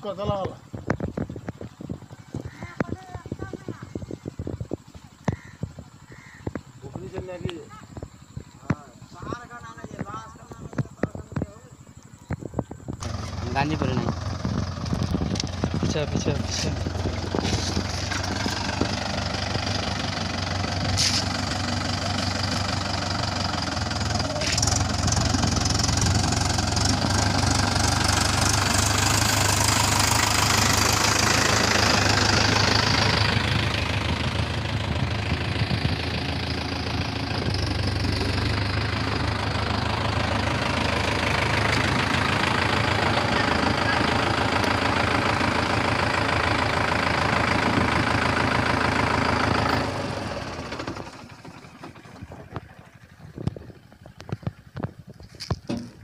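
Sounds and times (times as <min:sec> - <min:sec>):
diesel tractor engines running: 0:00.0 - 0:56.0.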